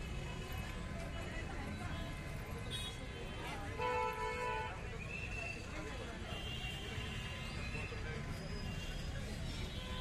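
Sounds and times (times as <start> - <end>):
people's voices: 0.0 - 10.0
steady low street rumble: 0.0 - 10.0.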